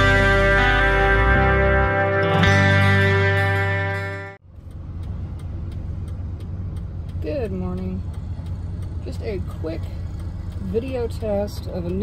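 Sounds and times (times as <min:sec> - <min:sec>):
guitar music: 0:00.0 - 0:04.4
road noise: 0:00.0 - 0:12.0
van engine rumble: 0:00.0 - 0:12.0
faint ticks: 0:04.6 - 0:12.0.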